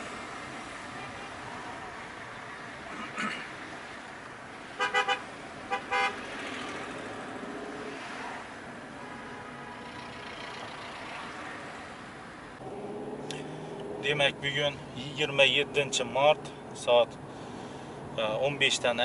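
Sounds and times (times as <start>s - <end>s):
road and engine noise: 0.0s - 19.0s
car horn toots: 4.8s - 6.2s.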